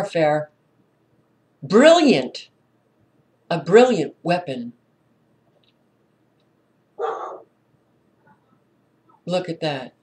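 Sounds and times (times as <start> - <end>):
dog barking: 7.0 - 7.5.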